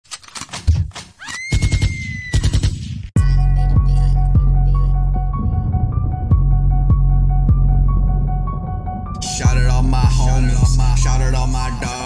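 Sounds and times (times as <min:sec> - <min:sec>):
fast low thumps: 0:01.6 - 0:11.0.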